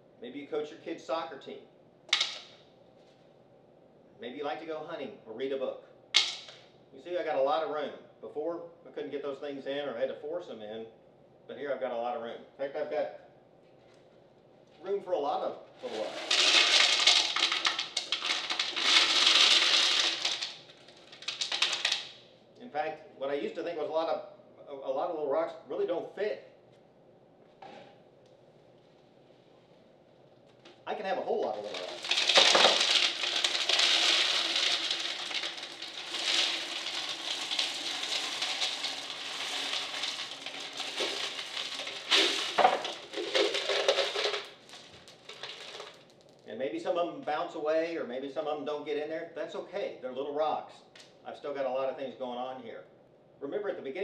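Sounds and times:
glass marbles clattering: 0:15.8 - 0:22.1, 0:31.5 - 0:46.1.

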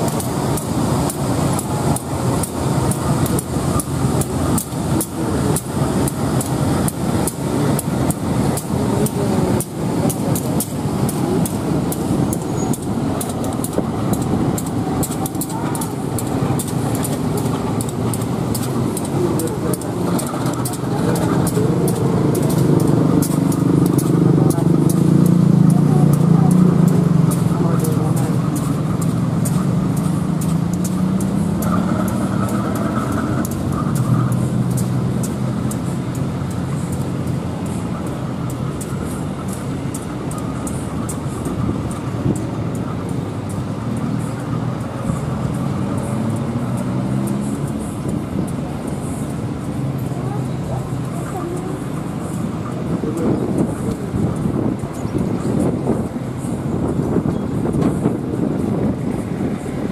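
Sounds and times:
diesel locomotive engine humming: 0:00.0 - 0:59.9.

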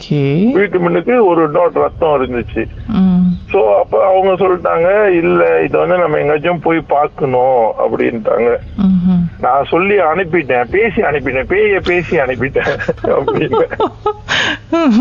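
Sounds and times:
person talking: 0:00.1 - 0:14.1.

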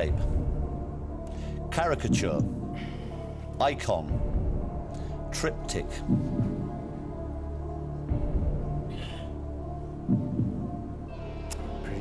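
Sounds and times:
tense game show music: 0:00.0 - 0:12.0.

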